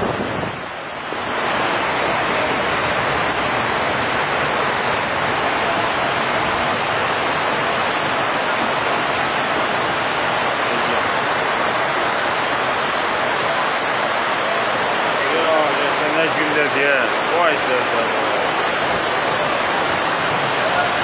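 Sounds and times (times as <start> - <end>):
floodwater rushing down a street: 0.0 - 21.0
rain falling: 0.0 - 21.0.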